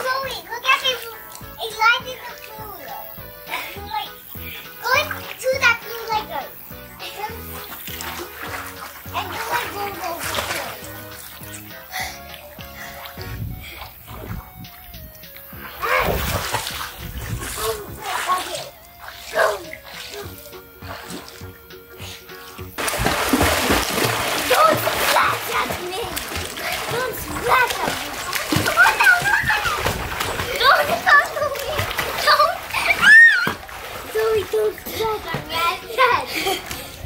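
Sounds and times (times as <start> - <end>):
children's voices: 0.0 - 7.8, 9.0 - 11.2, 17.3 - 20.6, 24.4 - 37.0
background music: 0.0 - 37.0
water splashing: 0.0 - 37.0.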